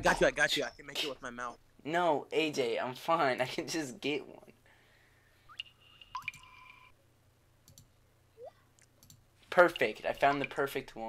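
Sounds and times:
sharp clicks: 8.8 - 10.6.

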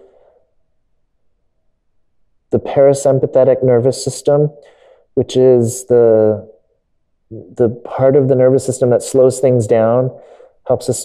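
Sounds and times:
man speaking: 2.5 - 6.6, 7.3 - 11.0.

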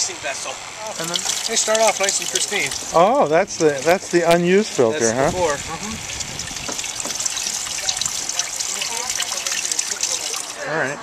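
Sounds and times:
wine trickling and splashing: 0.4 - 10.9.

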